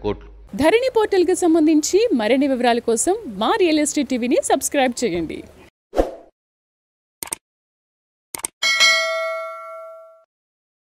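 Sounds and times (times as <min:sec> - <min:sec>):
bell-like ding: 0:08.6 - 0:10.3.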